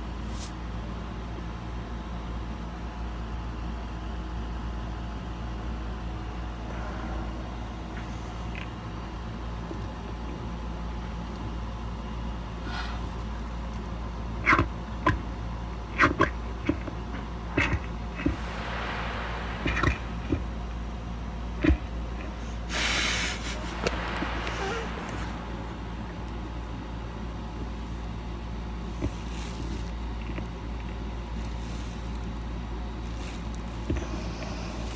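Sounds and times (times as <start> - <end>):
steady low rumble: 5.6 - 34.9.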